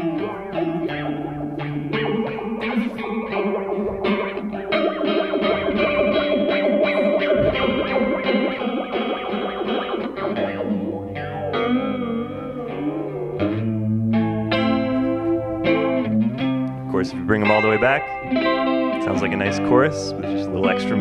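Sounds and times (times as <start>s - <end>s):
electric guitar with chorus effect: 0.0s - 21.0s.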